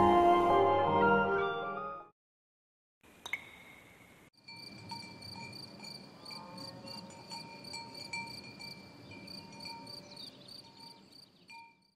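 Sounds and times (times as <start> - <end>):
crickets chirping: 4.4 - 11.9.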